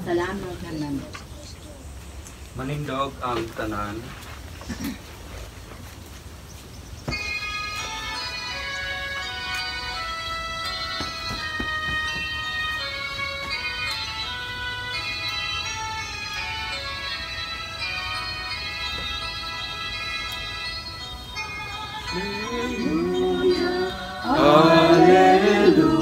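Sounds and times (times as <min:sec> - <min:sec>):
organ-like church music: 0:07.0 - 0:26.0
person singing: 0:21.7 - 0:26.0.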